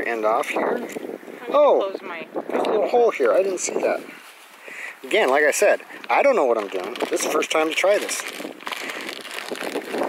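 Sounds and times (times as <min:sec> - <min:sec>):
scratchy rustling of wire: 0:04.0 - 0:10.0.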